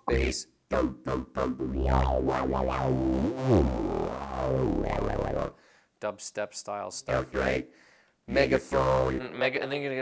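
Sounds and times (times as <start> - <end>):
deep synth-bass voice: 0.0 - 5.5, 8.3 - 9.2.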